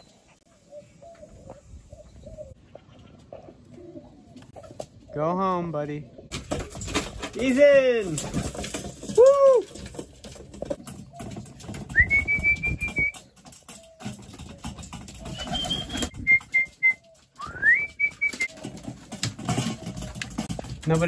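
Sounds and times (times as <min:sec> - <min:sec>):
pigeons pecking metal bowl: 0:06.2 - 0:21.0
pigeons fluttering: 0:06.3 - 0:21.0
short high whistles: 0:15.4 - 0:18.5.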